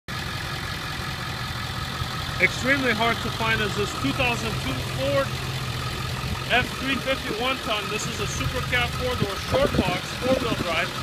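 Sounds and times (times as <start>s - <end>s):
diesel engine idling: 0.1s - 11.0s.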